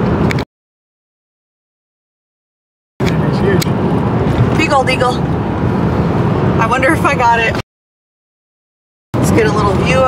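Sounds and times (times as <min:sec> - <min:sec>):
road and engine noise in car cabin: 0:00.0 - 0:00.5, 0:03.0 - 0:07.6, 0:09.2 - 0:10.0.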